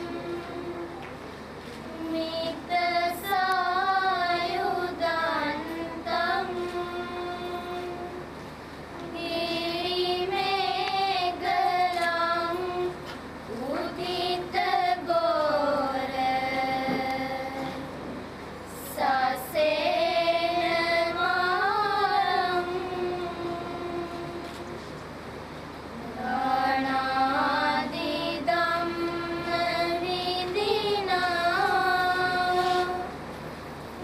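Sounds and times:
girls chanting in unison: 2.0 - 8.0, 9.1 - 12.9, 13.6 - 17.9, 26.2 - 33.1.

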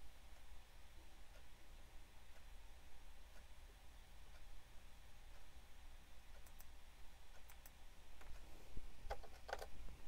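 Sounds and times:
faint computer mouse clicks: 6.3 - 6.7, 7.4 - 8.5.

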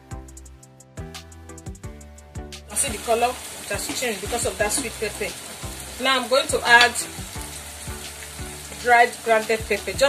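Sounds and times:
sauce sizzling in a pot: 2.7 - 10.0.

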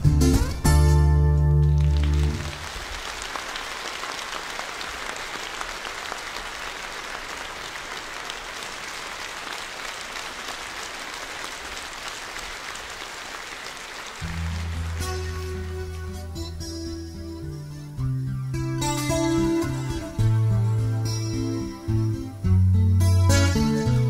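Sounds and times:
instrumental music: 0.0 - 2.6, 14.2 - 24.0
audience applauding: 1.6 - 16.7.

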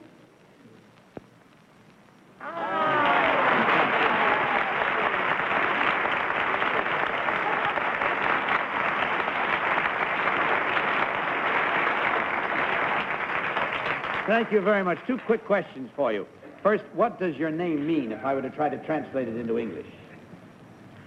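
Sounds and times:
audience applauding: 2.4 - 15.7.

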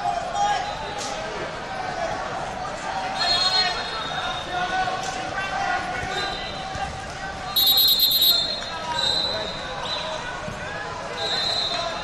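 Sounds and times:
crowd chatter echoing in hall: 0.0 - 12.0
loud trilling referee whistle: 7.6 - 10.0, 11.2 - 11.9
faint distant whistles: 7.6 - 10.3.

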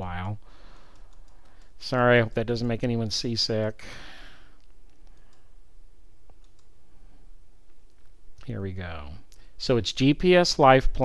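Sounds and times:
low room hum: 0.0 - 11.0
faint computer clicks: 0.2 - 2.6, 4.6 - 5.5, 6.2 - 6.8.

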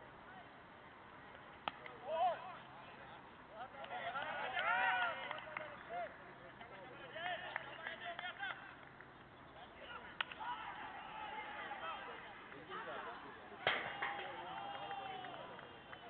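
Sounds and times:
players calling out: 3.6 - 16.0.

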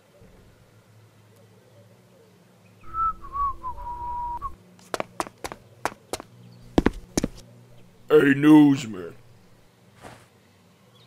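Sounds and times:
person whistling: 2.9 - 4.6
sharp irregular taps: 4.8 - 7.4.

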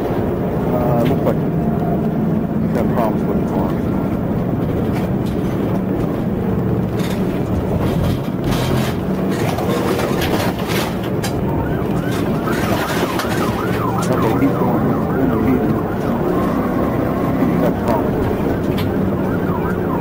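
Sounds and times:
car driving at highway speed: 0.0 - 20.0
police siren yelp: 9.7 - 20.0.

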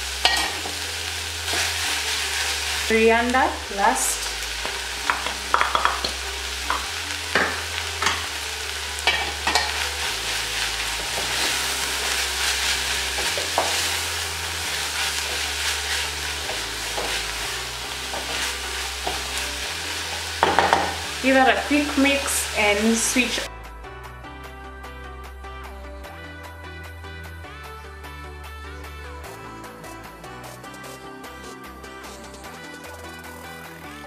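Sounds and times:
meat sizzling in a pot: 0.0 - 23.5
spoon knocking against pot: 5.1 - 6.1, 20.4 - 21.0
wooden spoon stirring: 11.0 - 21.0.

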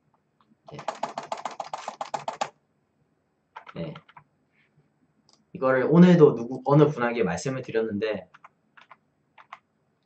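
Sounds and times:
computer keyboard typing: 0.7 - 2.6, 3.5 - 4.2, 8.3 - 9.6.

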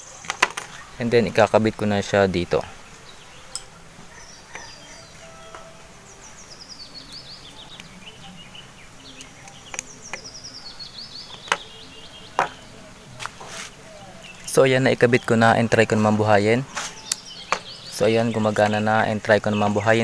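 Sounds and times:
bird chirping: 0.0 - 20.0
quiet outdoor background: 0.0 - 20.0.

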